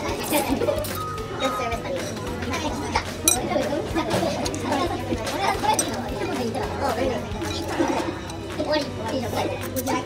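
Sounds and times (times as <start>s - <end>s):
indistinct talking voices: 0.0s - 10.0s
utensils clinking on bowl: 3.2s - 8.9s.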